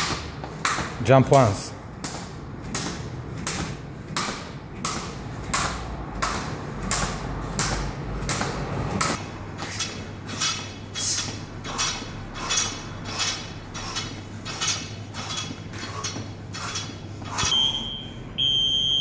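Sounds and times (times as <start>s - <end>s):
skipping rope slapping a mat: 2.0s - 9.2s
rope rattle: 2.6s - 17.6s.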